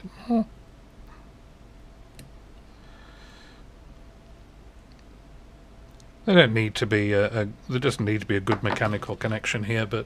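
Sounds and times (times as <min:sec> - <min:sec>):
soft exhale: 0:02.7 - 0:03.7.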